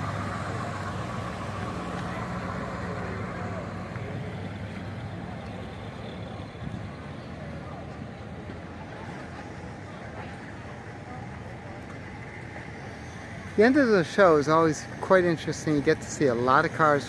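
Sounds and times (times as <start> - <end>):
car engine driving slowly past: 0.0 - 17.0
car engines running quietly: 0.0 - 17.0.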